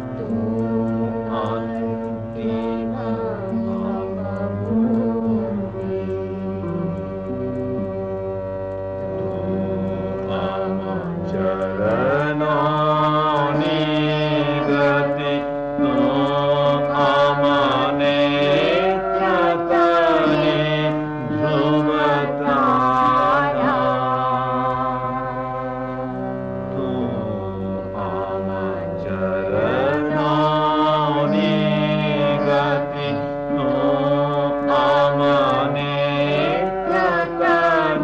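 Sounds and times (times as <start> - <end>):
person singing devotional song: 0.0 - 38.0
steady drone: 0.0 - 38.0.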